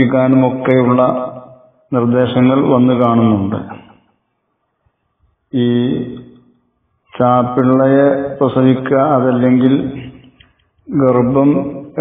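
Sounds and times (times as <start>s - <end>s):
man chanting: 7.2s - 10.2s, 10.9s - 12.0s.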